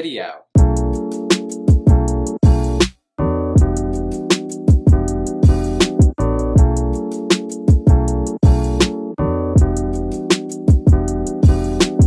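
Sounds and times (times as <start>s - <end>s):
drum beat with hi-hat: 0.6s - 3.0s, 3.6s - 8.9s, 9.6s - 12.0s
sustained keyboard chords: 0.6s - 12.0s.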